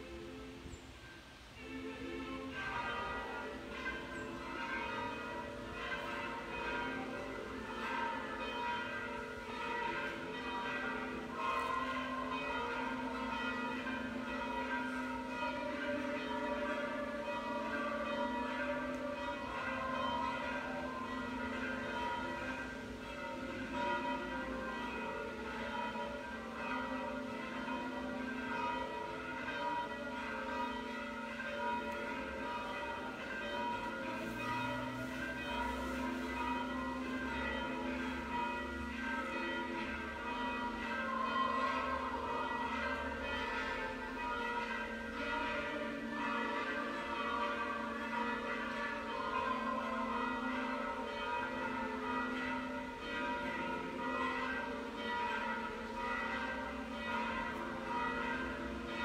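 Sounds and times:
church bells ringing: 0.0 - 59.0.

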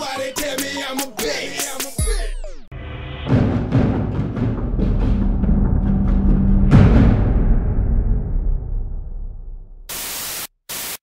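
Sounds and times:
low booming logo sting: 2.8 - 9.9
white-noise static bursts: 9.9 - 11.0.

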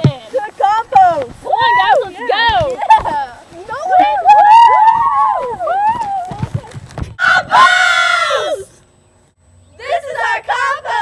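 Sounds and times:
low thuds: 0.0 - 4.0
girls whooping: 3.8 - 8.7.

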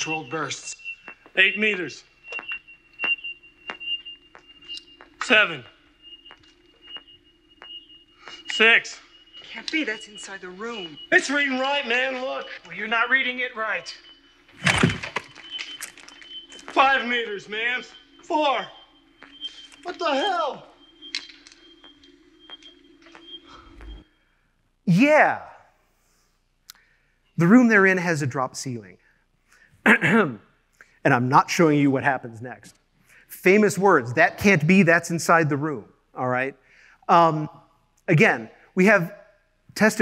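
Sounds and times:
steady high electronic tone: 0.0 - 24.3
low hum: 0.0 - 24.4
sharp electronic pings: 0.0 - 24.4.

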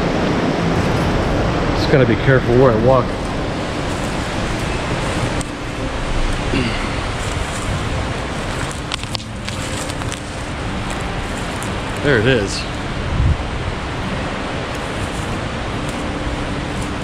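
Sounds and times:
river water rushing over rocks: 0.0 - 17.0
soft crackles: 3.0 - 13.0, 14.6 - 17.0.

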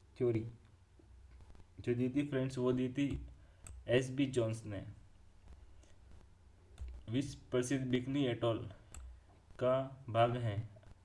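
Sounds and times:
computer mouse clicks: 5.4 - 7.1.

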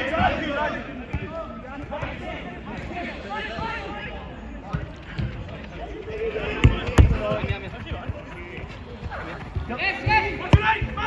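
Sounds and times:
running feet: 4.7 - 11.0
ball kicks: 6.5 - 11.0.

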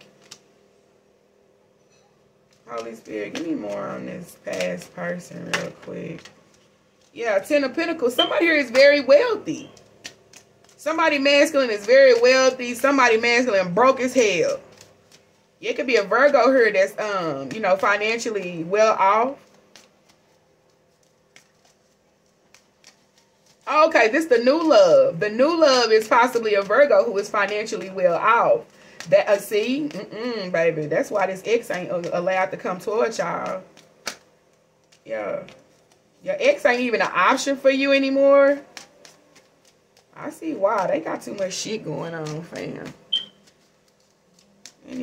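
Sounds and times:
person speaking: 2.6 - 6.4, 7.0 - 9.9, 10.7 - 14.8, 15.6 - 19.8, 23.5 - 33.8, 35.0 - 35.6, 36.2 - 39.1, 40.0 - 43.3, 44.6 - 45.0
sharp sound with high squeak: 43.1 - 43.4.

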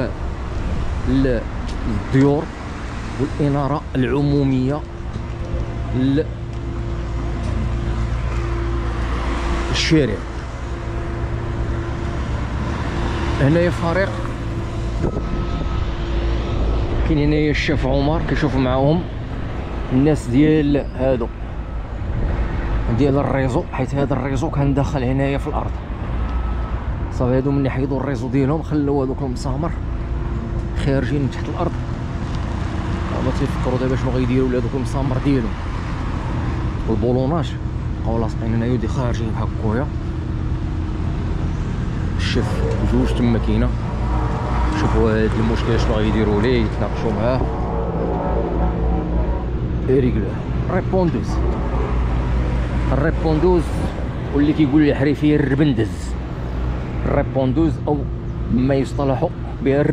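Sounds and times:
street traffic rumble: 0.0 - 59.9
van passing close by: 39.6 - 59.9.

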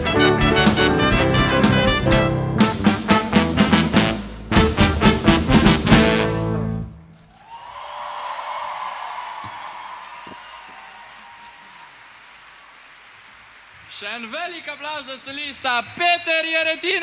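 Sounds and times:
band brass chord hits: 0.0 - 6.8
audience applause and cheering: 7.2 - 14.9.

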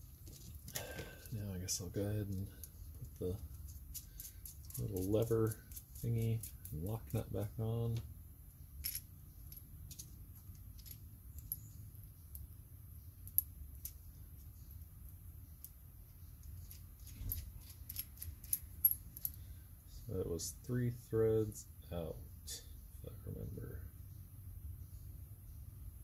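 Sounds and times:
low steady hum: 0.0 - 26.0
small metal parts clinking: 2.3 - 7.2, 8.8 - 12.6, 13.2 - 15.8, 16.4 - 19.5.

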